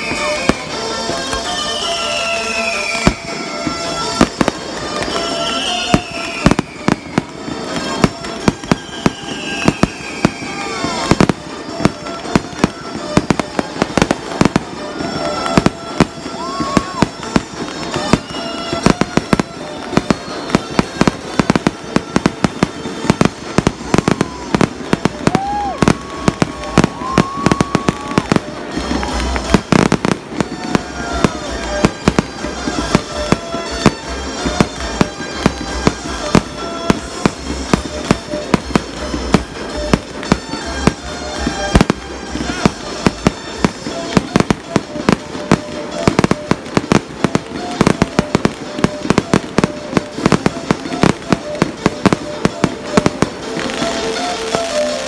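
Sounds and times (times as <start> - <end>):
fireworks bangs and crackles: 0.0 - 55.0
fireworks falling whistles: 0.0 - 55.0.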